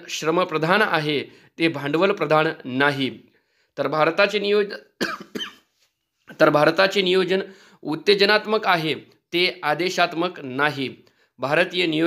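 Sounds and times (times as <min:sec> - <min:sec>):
man speaking: 0:00.0 - 0:05.1, 0:06.3 - 0:12.0
short coughs: 0:05.0 - 0:05.8.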